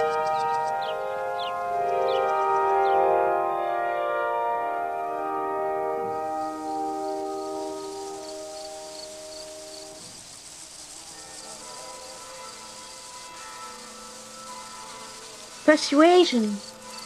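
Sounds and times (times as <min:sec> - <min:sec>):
faint high pulsing chirp: 0:00.0 - 0:03.5, 0:06.1 - 0:17.0
gentle film score music: 0:00.0 - 0:17.0.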